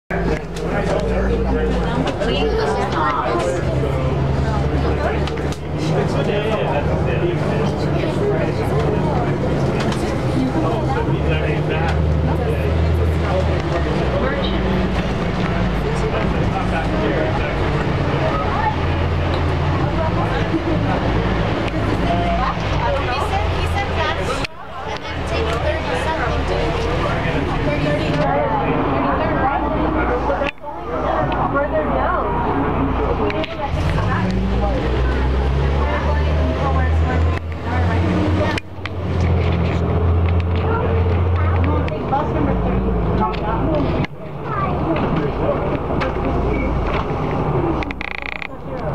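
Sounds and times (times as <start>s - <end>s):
bus diesel engine droning: 0.1s - 48.9s
people chattering: 0.1s - 48.9s
voices: 0.1s - 48.9s.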